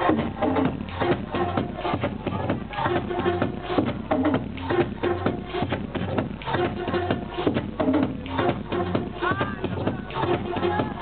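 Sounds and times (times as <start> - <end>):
muffled electronic dance music: 0.0 - 11.0.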